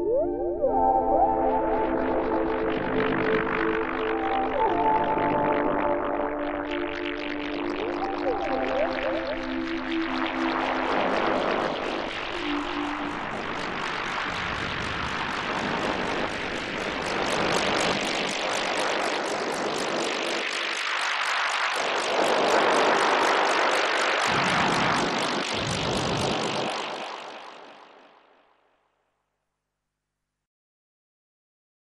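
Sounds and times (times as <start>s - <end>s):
sustained music notes: 0.0s - 15.6s
synthesizer fluttering noise effect: 0.0s - 28.4s.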